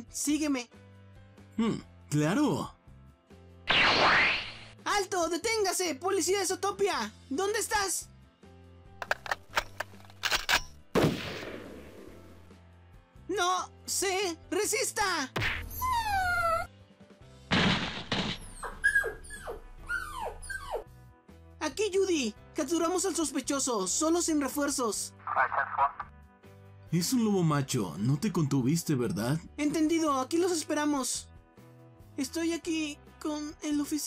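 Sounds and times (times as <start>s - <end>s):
background music: 0.0s - 34.0s
wolf whimpering: 15.7s - 16.7s, 18.4s - 20.9s.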